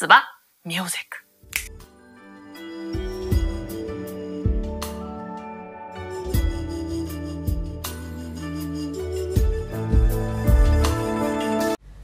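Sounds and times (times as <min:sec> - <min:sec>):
finger snap: 0:01.5 - 0:01.9
music with held notes: 0:01.7 - 0:11.8.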